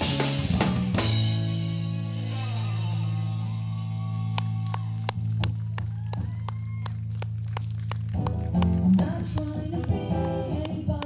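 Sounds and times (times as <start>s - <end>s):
guitar chords: 0.0s - 5.8s, 8.1s - 11.0s
bass and guitar low note: 0.0s - 11.0s.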